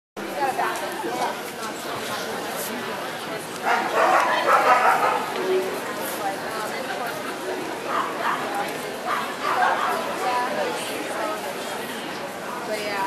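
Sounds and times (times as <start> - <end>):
crowd chatter: 0.2 - 13.0
dogs barking: 3.6 - 5.4, 7.9 - 8.5, 9.1 - 10.2.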